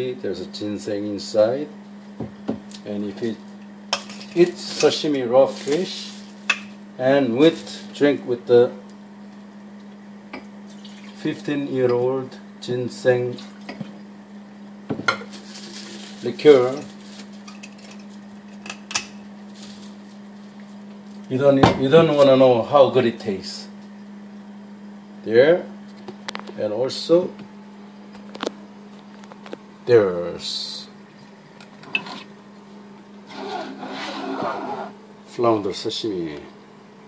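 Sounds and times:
steady low hum: 0:00.0 - 0:37.0
scraping rub: 0:33.2 - 0:35.0.

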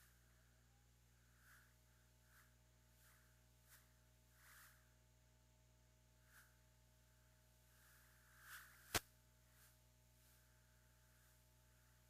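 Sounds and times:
low steady hum: 0:00.0 - 0:12.0
faint swishes: 0:01.2 - 0:05.0, 0:07.6 - 0:12.0.

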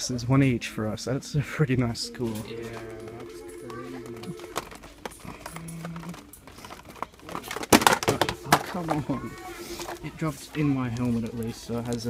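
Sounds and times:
plastic packaging clicks and rustles: 0:04.4 - 0:12.0.

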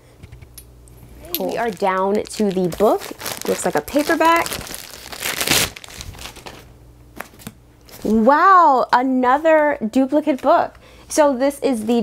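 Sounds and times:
wrapping crinkling and rustling: 0:01.2 - 0:08.3.

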